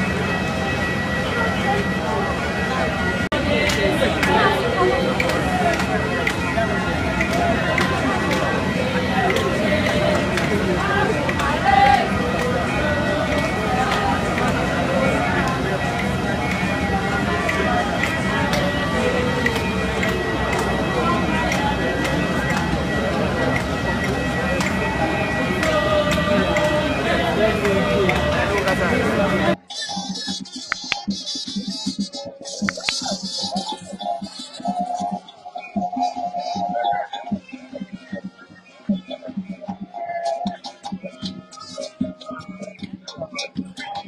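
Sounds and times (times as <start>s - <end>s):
crowd talking: 0.0s - 44.0s.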